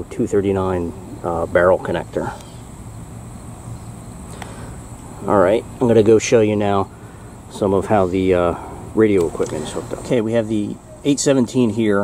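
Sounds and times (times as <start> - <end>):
high-pitched insect drone: 0.0 - 12.0
low steady hum: 0.0 - 12.0.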